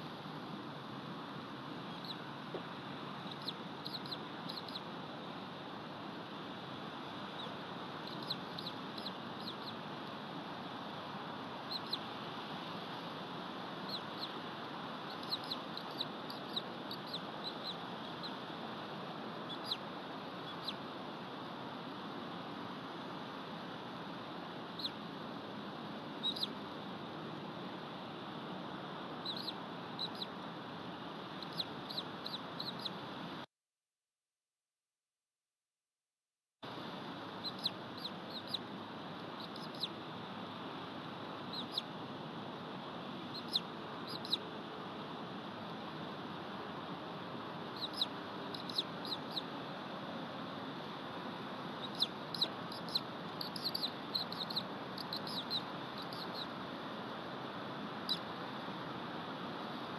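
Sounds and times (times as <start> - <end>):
steady background hiss: 0.0 - 33.5, 36.6 - 59.9
high bird chirps: 3.2 - 4.8, 7.4 - 9.8, 11.7 - 12.0, 15.1 - 18.4, 19.5 - 19.8, 26.2 - 26.5, 29.2 - 30.3, 31.4 - 32.9, 37.4 - 38.6, 39.4 - 39.9, 41.5 - 41.9, 43.3 - 44.4, 47.8 - 49.5, 51.8 - 56.5.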